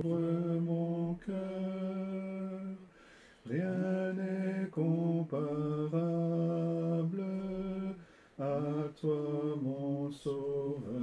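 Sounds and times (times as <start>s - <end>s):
unaccompanied hymn singing: 0.0s - 11.0s.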